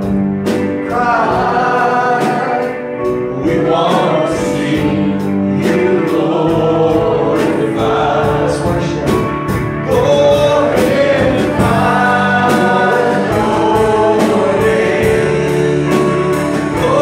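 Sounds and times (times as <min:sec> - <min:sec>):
backing voices singing: 0:00.0 - 0:17.0
electric guitar: 0:00.0 - 0:17.0
keyboard: 0:00.0 - 0:17.0
man singing into a microphone: 0:00.8 - 0:17.0.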